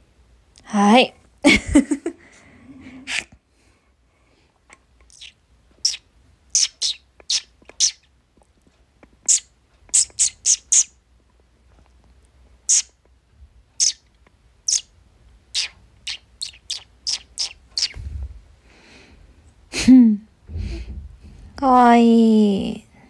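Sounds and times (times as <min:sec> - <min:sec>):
cockatiel chirping: 0:05.1 - 0:08.1, 0:09.3 - 0:10.9, 0:12.7 - 0:12.9, 0:13.8 - 0:14.0, 0:15.5 - 0:18.0.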